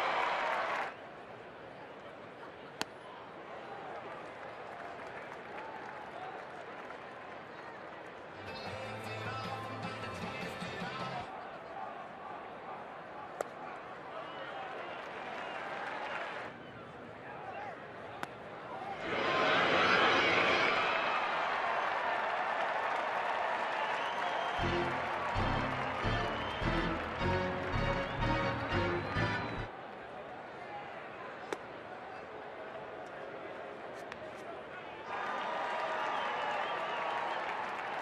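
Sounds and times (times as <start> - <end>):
stadium crowd cheering: 0.0 - 38.0
echoing public address: 24.6 - 29.7.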